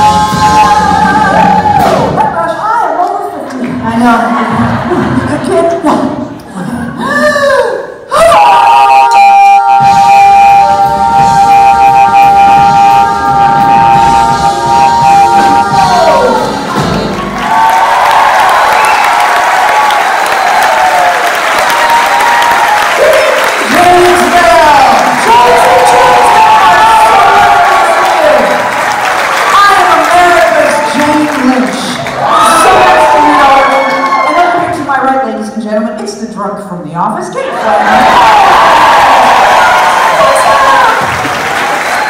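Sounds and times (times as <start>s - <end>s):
audience applauding and cheering: 0.0s - 2.4s, 8.2s - 34.7s, 37.5s - 42.0s.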